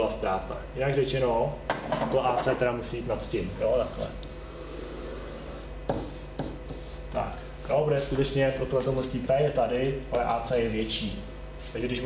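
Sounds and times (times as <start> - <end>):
marker pen rubbing on whiteboard: 4.5 - 7.2.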